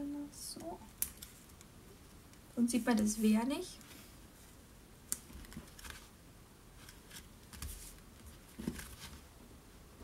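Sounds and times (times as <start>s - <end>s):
paper rustling: 6.8s - 9.3s.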